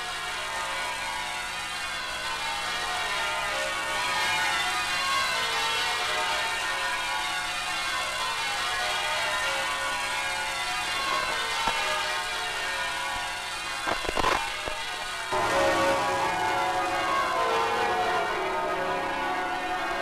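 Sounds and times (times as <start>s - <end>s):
bells ringing: 2.8s - 14.3s, 15.3s - 20.0s.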